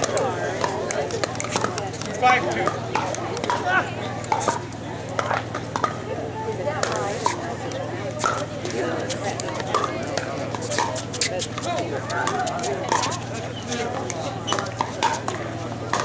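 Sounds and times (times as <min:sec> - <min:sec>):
murmur of voices: 0:00.0 - 0:16.0.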